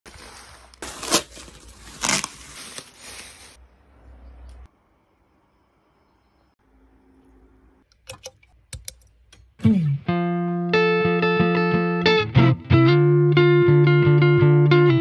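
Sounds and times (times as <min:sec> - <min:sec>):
cardboard packaging rustling: 0:00.1 - 0:03.6.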